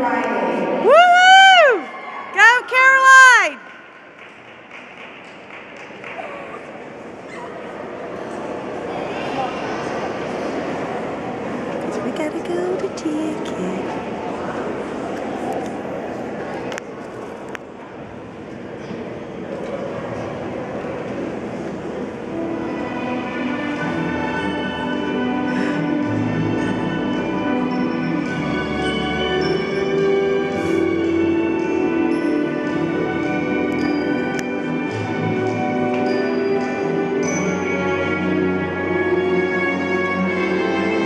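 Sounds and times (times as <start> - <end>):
ice rink background noise: 0.0 - 41.0
orchestral music over speakers: 22.3 - 41.0.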